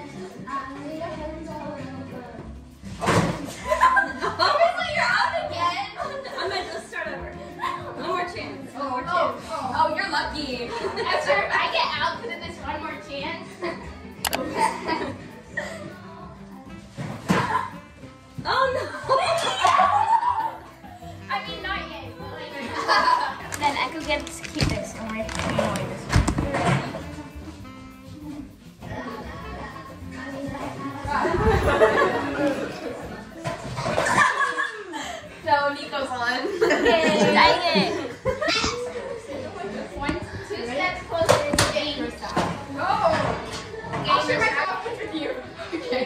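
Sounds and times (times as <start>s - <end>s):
music playing: 0.0s - 46.0s
girls' voices: 3.4s - 16.6s, 17.5s - 46.0s
excited girls' voices: 3.7s - 8.2s, 18.4s - 20.7s.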